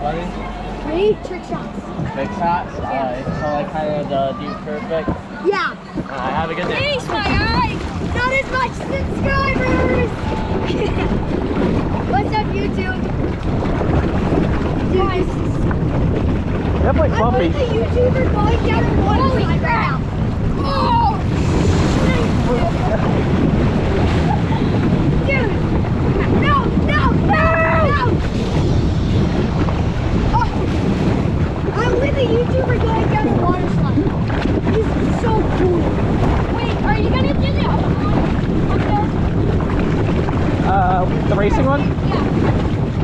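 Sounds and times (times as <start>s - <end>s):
water rushing and splashing: 0.0s - 43.0s
wind buffeting microphone: 0.0s - 43.0s.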